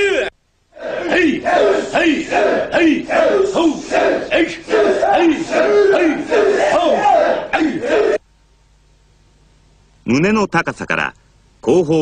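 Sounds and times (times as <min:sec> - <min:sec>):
group shouting short kiai: 0:00.0 - 0:08.2.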